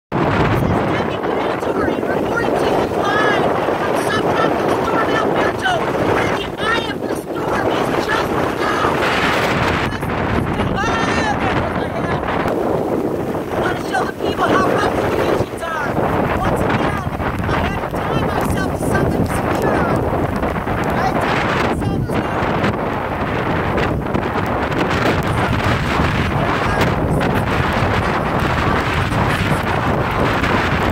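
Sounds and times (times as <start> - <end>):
wind buffeting microphone: 0.1 - 30.9
woman shouting: 0.6 - 9.0, 9.6 - 12.2, 13.6 - 20.0, 20.9 - 22.5, 26.3 - 29.8.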